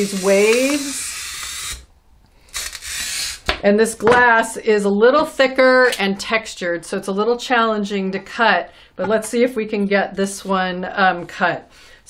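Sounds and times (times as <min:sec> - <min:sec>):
glass cutter scoring glass: 0:00.0 - 0:01.9, 0:02.5 - 0:03.6.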